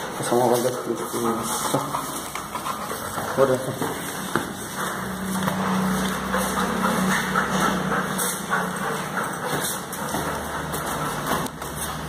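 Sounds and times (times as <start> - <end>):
footsteps on stairs: 0.0 - 12.0
low motor hum: 4.1 - 12.0.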